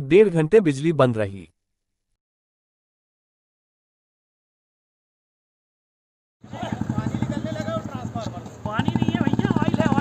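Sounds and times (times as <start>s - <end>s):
bystanders talking: 6.4s - 10.0s
rapidly pulsing engine: 6.4s - 10.0s.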